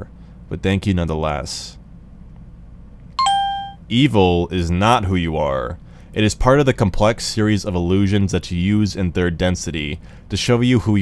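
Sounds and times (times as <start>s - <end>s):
two-note chime: 3.2s - 3.8s.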